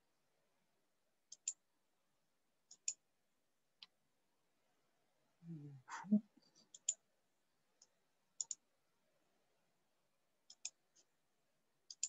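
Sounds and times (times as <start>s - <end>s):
short low vocal sound: 5.4s - 6.3s.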